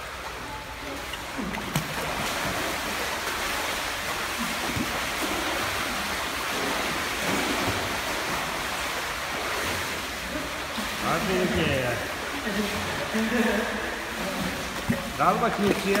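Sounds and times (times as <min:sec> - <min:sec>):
child splashing in pool: 0:00.3 - 0:16.0.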